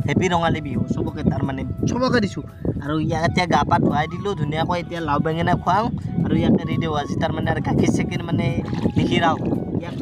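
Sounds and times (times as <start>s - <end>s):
wind rumble on microphone: 0.0s - 10.0s
young man talking: 0.0s - 10.0s.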